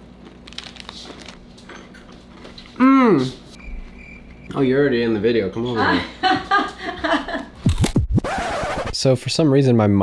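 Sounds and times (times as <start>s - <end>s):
pitch sweeps like record scratch: 7.6s - 9.0s.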